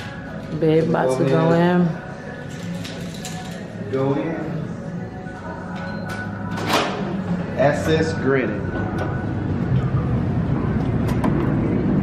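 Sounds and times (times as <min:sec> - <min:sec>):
low city rumble: 0:08.6 - 0:12.0.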